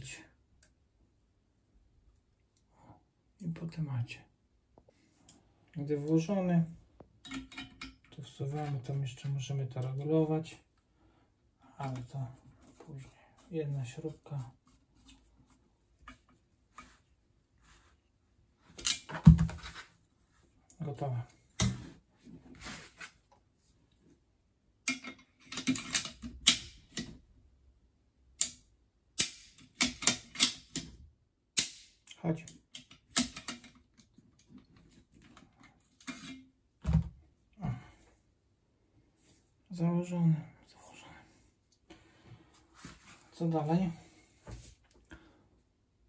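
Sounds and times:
metal parts knocking and rattling: 7.2s - 8.4s, 24.9s - 27.1s, 29.5s - 31.0s, 32.8s - 33.8s
handling metal parts: 7.2s - 9.3s, 24.9s - 27.1s, 34.8s - 36.5s.

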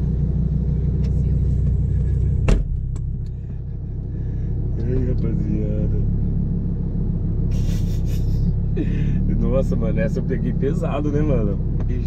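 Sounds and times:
car engine idling: 0.0s - 12.0s
car door shutting: 1.1s - 3.2s.

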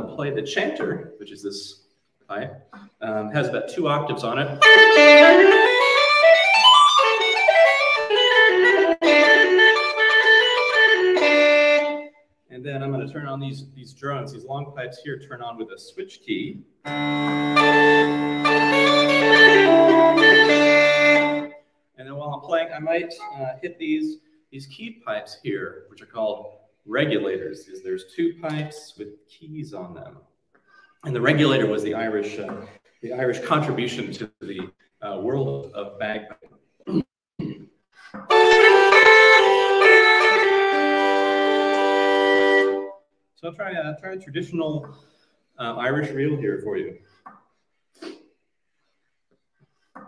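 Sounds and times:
bagpipes drone and chord: 4.6s - 12.1s, 16.9s - 21.6s, 38.3s - 43.0s
uilleann pipes playing: 4.6s - 12.2s, 16.9s - 21.6s, 38.3s - 43.0s.

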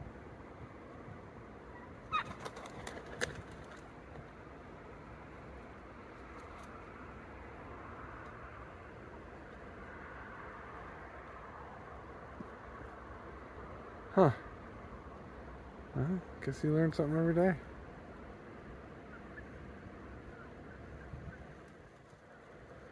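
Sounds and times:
faint outdoor background: 0.0s - 22.9s
wild turkeys calling: 1.7s - 3.3s.

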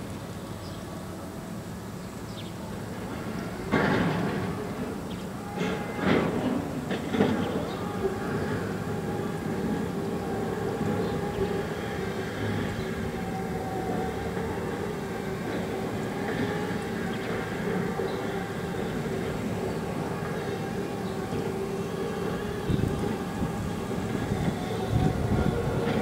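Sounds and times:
machine rumbling with hum: 2.4s - 26.0s.

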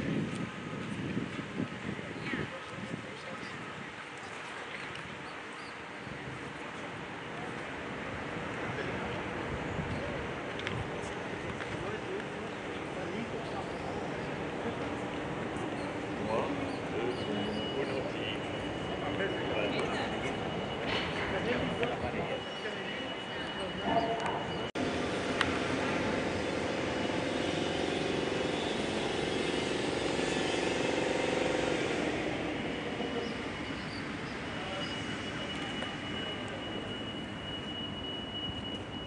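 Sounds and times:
outdoor background noise: 0.0s - 39.0s
urban background noise: 0.0s - 39.0s
vehicle engine passing: 24.8s - 34.5s.

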